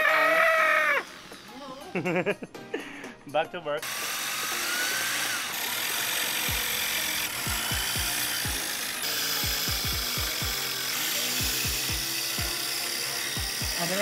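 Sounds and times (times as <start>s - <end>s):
electric drill whirring: 0.6s - 1.9s, 3.8s - 14.0s
music with bass beat: 7.4s - 8.6s, 9.4s - 10.6s.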